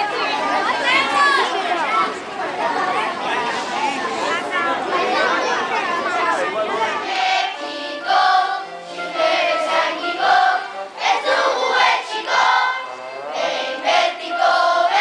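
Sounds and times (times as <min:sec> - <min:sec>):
crowd chatter: 0:00.0 - 0:15.0
children singing in unison: 0:06.1 - 0:15.0.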